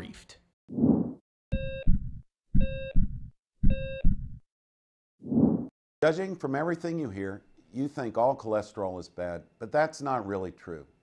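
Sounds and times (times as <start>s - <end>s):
heart monitor beep: 1.5s - 4.4s
heartbeat thumps: 1.6s - 4.4s.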